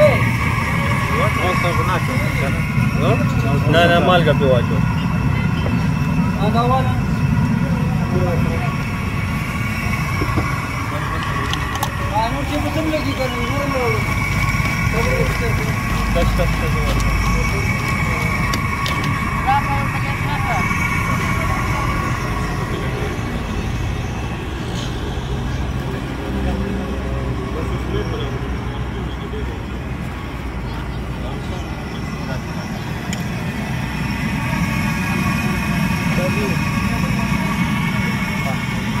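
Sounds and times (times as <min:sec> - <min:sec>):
indistinct voices: 0:00.0 - 0:39.0
steady high-pitched tones: 0:00.0 - 0:39.0
traffic rumble: 0:00.0 - 0:39.0.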